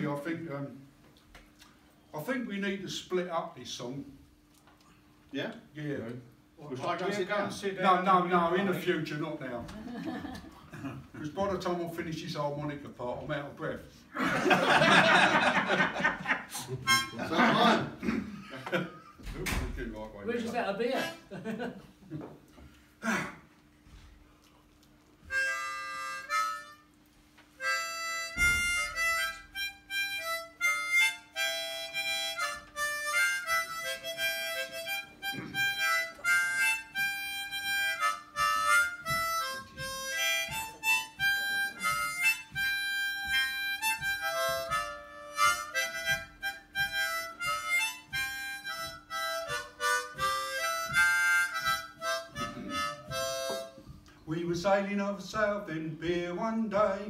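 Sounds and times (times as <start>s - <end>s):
harmonica playing: 16.6s - 17.8s, 25.2s - 54.2s.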